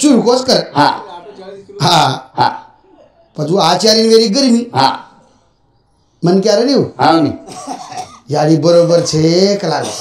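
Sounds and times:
man speaking into a microphone: 0.0 - 5.2, 6.2 - 10.0.

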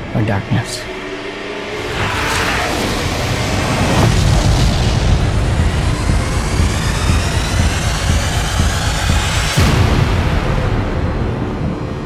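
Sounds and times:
rumbling roar: 1.7 - 8.0.

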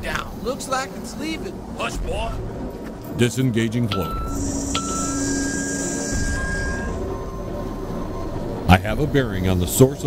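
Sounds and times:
short beeps: 3.9 - 8.7
electronic hum: 3.9 - 10.0.

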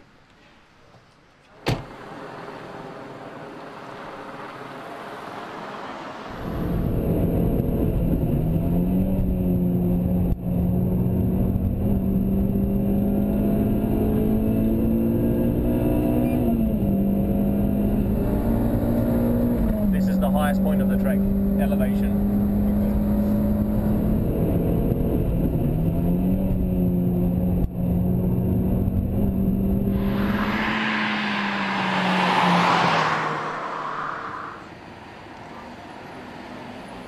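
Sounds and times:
car engine running hard: 2.0 - 37.0
rising hiss: 29.8 - 34.7.

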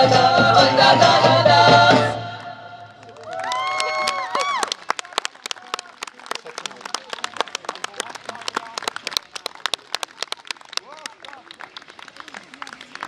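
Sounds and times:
audience clapping: 2.4 - 13.0.

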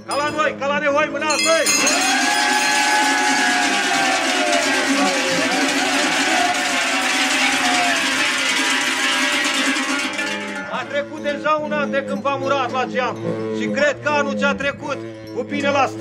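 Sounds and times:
hand bells jangling: 0.0 - 16.0
long drawn-out shouts: 1.3 - 10.7.

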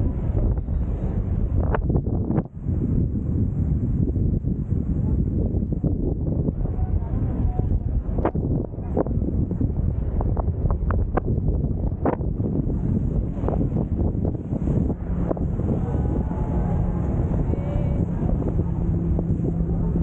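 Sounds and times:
speedboat engine drone: 0.0 - 20.0
wind buffeting microphone: 0.0 - 20.0.

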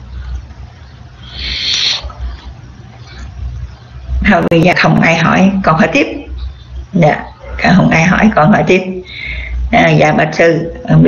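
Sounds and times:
breath hiss into microphone: 1.2 - 2.1.

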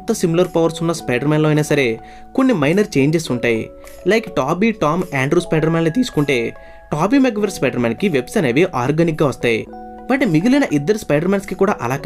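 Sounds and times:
faint background music: 0.0 - 12.0
person speaking: 0.0 - 12.0.

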